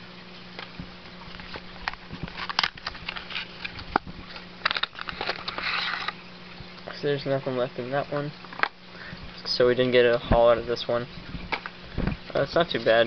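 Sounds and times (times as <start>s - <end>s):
cardboard and cards rustling: 1.3s - 6.2s.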